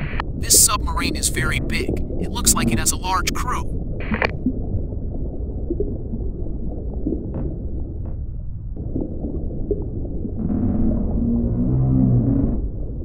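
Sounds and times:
low underwater rumble: 3.7 - 13.0
low drawn-out moaning tones: 10.4 - 13.0.

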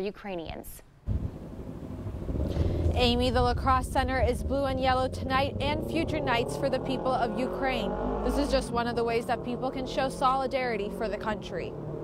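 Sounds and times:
low outdoor rumble: 1.0 - 12.0.

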